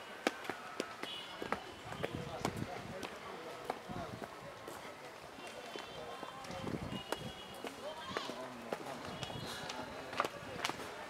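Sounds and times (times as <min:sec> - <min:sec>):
footsteps on paved path: 0:00.0 - 0:11.0.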